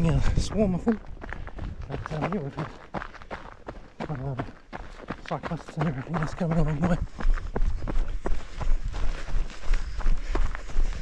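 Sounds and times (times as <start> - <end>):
wind rumble on microphone: 0.0 - 2.4, 6.7 - 11.0
footsteps on asphalt: 0.0 - 11.0.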